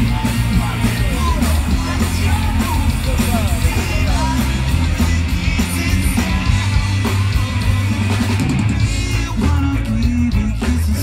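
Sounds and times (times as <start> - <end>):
person singing: 0.0 - 7.4, 8.8 - 11.0
live rock band playing: 0.0 - 11.0.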